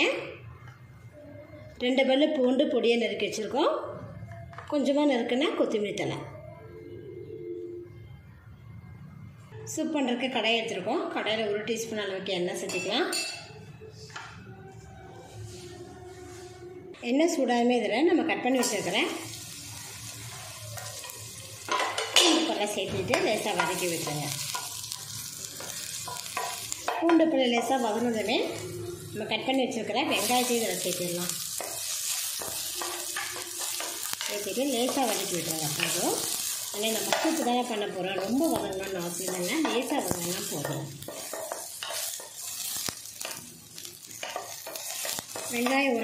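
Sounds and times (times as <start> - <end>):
garlic sizzling in hot oil: 18.5 - 46.0
spatula scraping and tapping pan: 20.8 - 28.0, 30.1 - 46.0.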